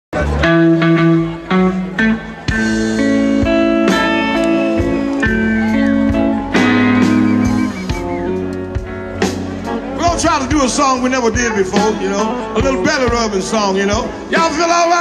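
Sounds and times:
electric blues band: 0.1s - 15.0s
bent lead guitar notes: 0.2s - 15.0s.

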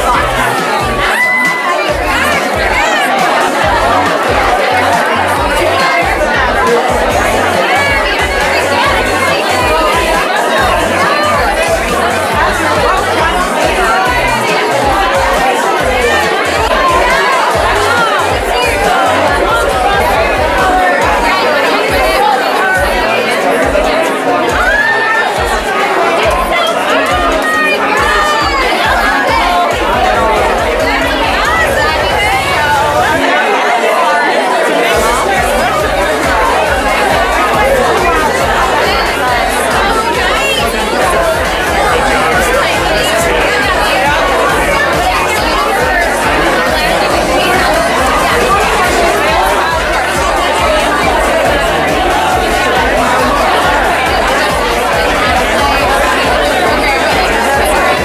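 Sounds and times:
music with steady bass line: 0.0s - 22.2s, 28.0s - 33.2s, 35.0s - 58.0s
crowd chatter: 0.0s - 58.0s.

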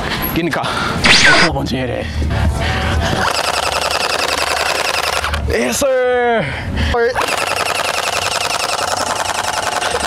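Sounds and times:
gel blaster firing full auto: 1.0s - 1.5s, 3.3s - 5.3s, 7.2s - 10.0s.

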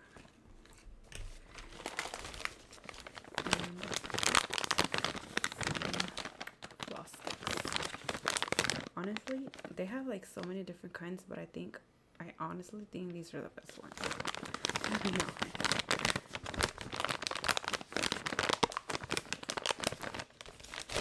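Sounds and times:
plastic pouch crinkling: 0.6s - 9.8s, 13.7s - 21.0s.

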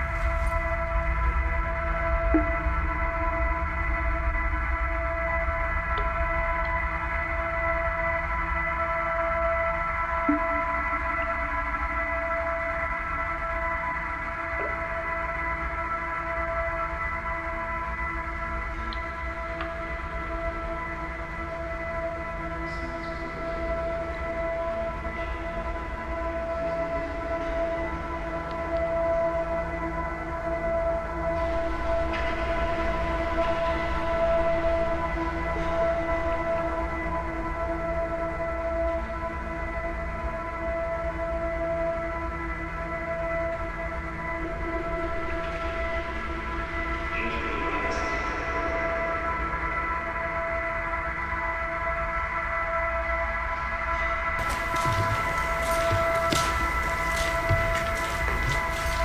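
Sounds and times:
ambient drone music: 0.0s - 59.0s.

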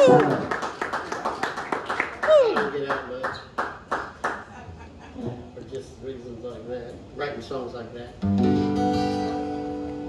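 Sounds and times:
small audience applause: 0.0s - 4.5s.

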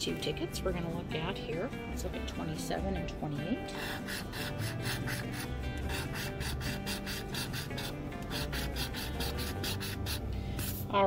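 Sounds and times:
background music: 0.0s - 11.0s
coin scraping lottery ticket: 3.8s - 10.8s.

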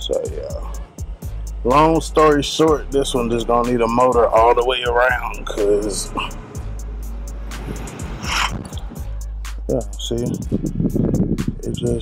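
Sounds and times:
background music: 0.0s - 12.0s
car engine low drone: 0.0s - 12.0s.

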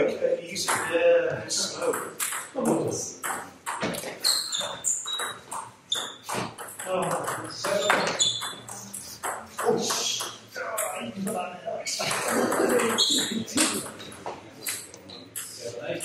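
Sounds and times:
people talking: 0.0s - 3.4s, 6.8s - 16.0s.

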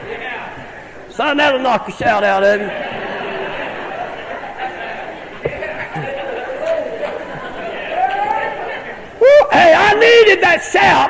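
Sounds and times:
congregation calling out and talking: 0.0s - 11.0s.

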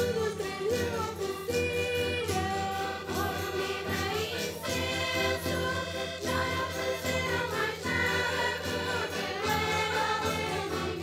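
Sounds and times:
button accordions: 0.0s - 11.0s
choir singing a carol: 0.0s - 11.0s
strummed guitars: 0.0s - 11.0s.

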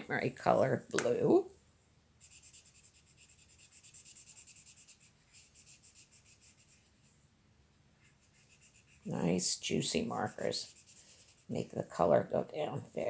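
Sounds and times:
marker scribbling on paper: 2.2s - 7.2s, 8.0s - 12.1s.

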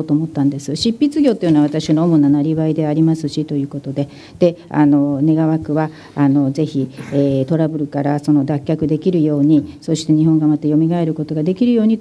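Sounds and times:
person speaking: 6.2s - 8.0s.

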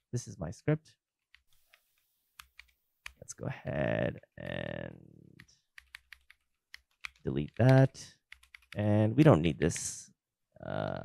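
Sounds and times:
computer keyboard keystrokes: 5.4s - 8.8s.

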